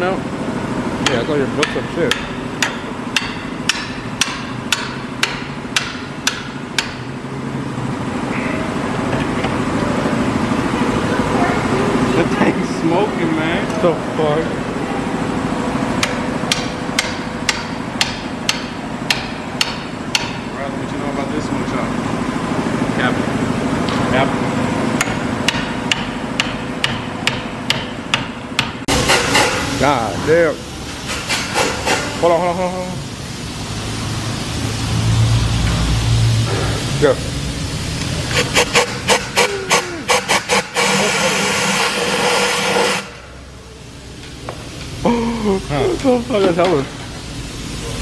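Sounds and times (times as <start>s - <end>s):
steady background hum: 0.0s - 48.0s
hammer striking steel bar: 1.0s - 7.1s, 16.0s - 20.4s, 25.0s - 29.6s
air tool running: 28.9s - 43.6s.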